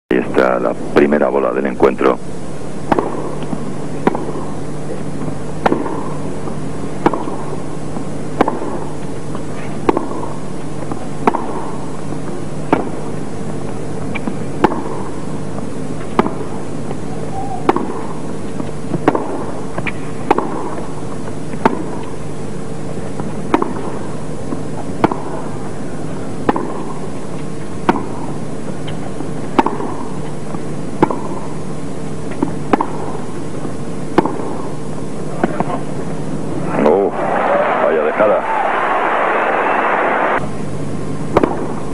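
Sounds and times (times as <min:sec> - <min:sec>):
steady low hum: 0:00.1 - 0:41.9
tennis balls struck by rackets: 0:02.8 - 0:13.3, 0:14.0 - 0:22.2, 0:23.1 - 0:31.7, 0:32.3 - 0:34.8, 0:35.4 - 0:35.9, 0:41.3 - 0:41.9.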